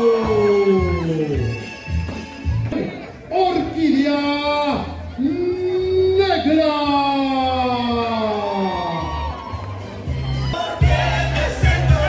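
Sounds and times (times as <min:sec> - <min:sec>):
loud music: 0:08.6 - 0:12.0.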